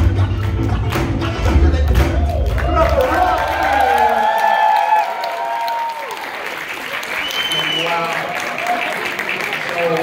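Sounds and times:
dance music: 0:00.0 - 0:04.3
crowd applauding and calling out: 0:00.0 - 0:10.0.

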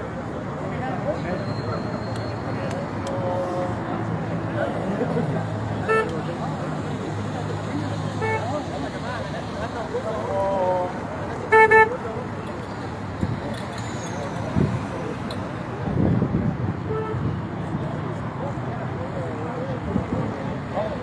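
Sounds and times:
car engines running: 0:02.4 - 0:21.0
car horn toots: 0:11.5 - 0:12.0.

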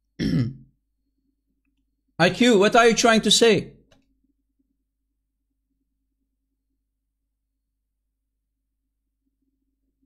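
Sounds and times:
person clearing throat: 0:00.2 - 0:00.7.

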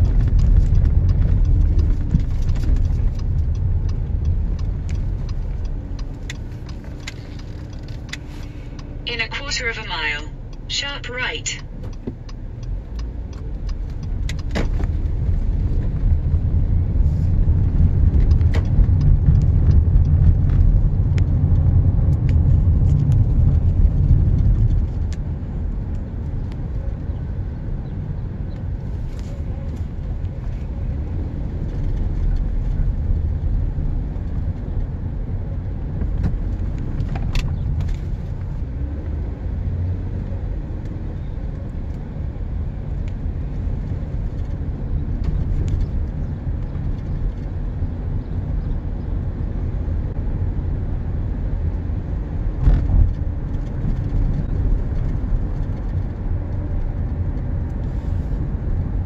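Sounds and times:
car engine and tyre rumble: 0:00.0 - 0:59.0.

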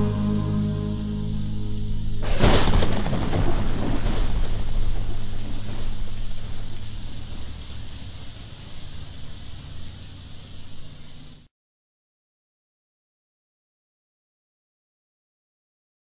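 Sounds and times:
rumbling wash of noise: 0:00.0 - 0:11.4.

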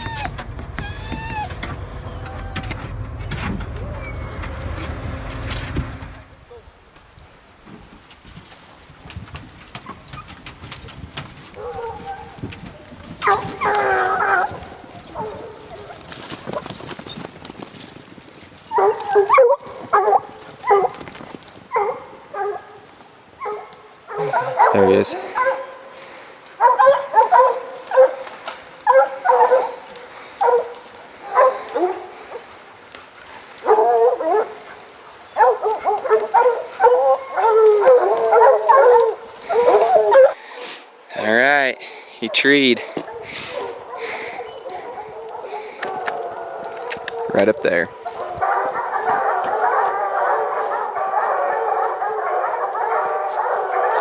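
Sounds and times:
hounds baying and barking: 0:00.0 - 0:06.3, 0:11.5 - 0:16.8, 0:18.5 - 0:32.6, 0:33.3 - 0:40.6, 0:42.2 - 0:54.0.

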